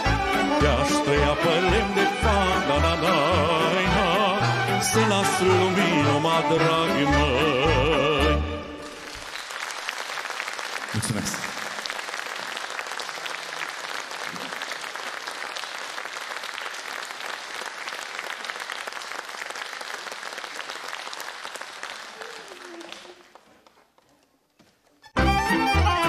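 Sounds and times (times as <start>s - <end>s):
audience applauding: 0.0s - 6.9s, 8.8s - 24.4s.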